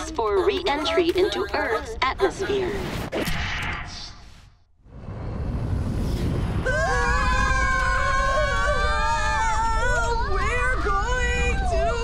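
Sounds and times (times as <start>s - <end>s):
low rumble: 3.4s - 12.0s.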